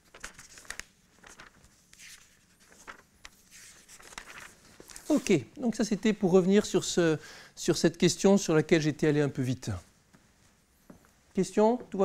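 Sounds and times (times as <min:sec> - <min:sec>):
paper pages rustling: 0:00.0 - 0:05.5.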